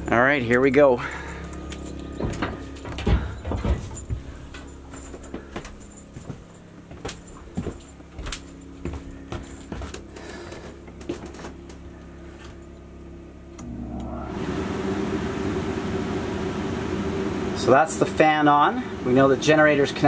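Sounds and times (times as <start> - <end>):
air conditioner blower fan: 0.0 - 20.0
low hum: 0.0 - 20.0.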